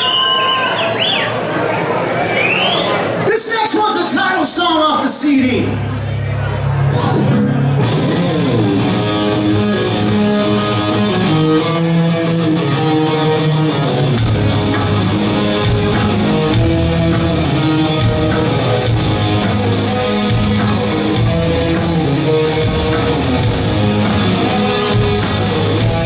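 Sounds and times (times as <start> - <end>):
low bass guitar: 5.7 - 26.0
electric guitar riff with slide: 6.8 - 26.0
drum hits: 14.2 - 26.0.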